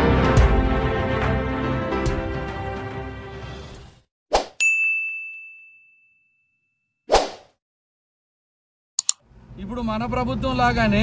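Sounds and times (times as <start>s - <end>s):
brief swish: 4.3s - 4.6s, 7.1s - 7.6s.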